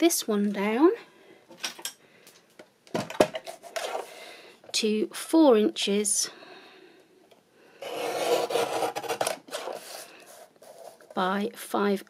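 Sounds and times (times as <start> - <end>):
paper trimmer cutting card: 7.8 - 9.8.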